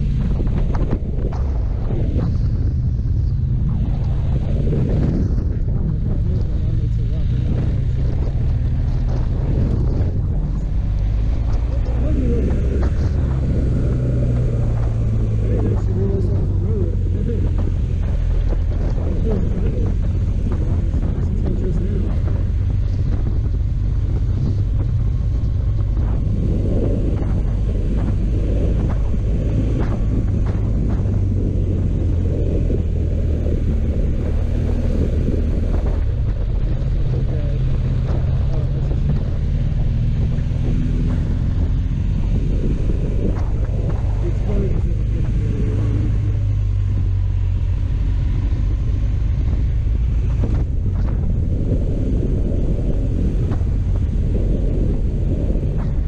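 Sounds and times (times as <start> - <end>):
motorcycle engine running: 0.0 - 56.0
wind rushing on microphone: 0.0 - 56.0.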